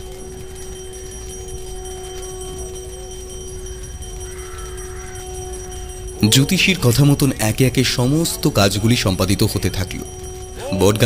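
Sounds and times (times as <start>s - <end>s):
faint wavering notes: 0.0s - 11.0s
held drone of sustained tones: 0.0s - 11.0s
shimmering texture: 0.0s - 11.0s.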